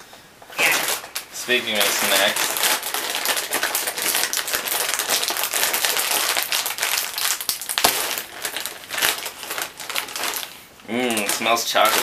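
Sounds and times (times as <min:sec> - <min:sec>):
plastic snack bag crinkling: 0:00.5 - 0:12.0
plastic bag snapping: 0:00.6 - 0:12.0.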